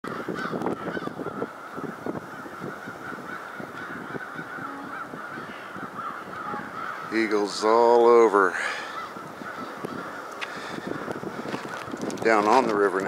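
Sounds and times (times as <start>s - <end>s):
distant chorus of birds: 0.0s - 12.3s
crackles: 9.7s - 13.0s.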